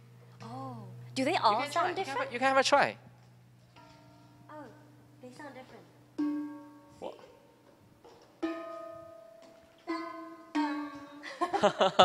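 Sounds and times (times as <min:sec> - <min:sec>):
bronze drums ringing: 0:03.4 - 0:07.6, 0:08.2 - 0:11.1.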